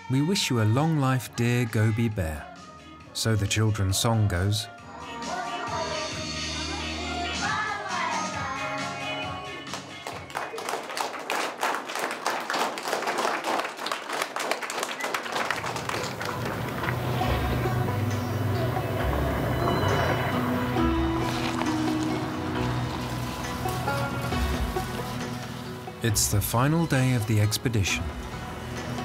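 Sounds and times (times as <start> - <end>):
dense clapping: 9.7 - 17.4
background music with low notes: 16.7 - 29.0.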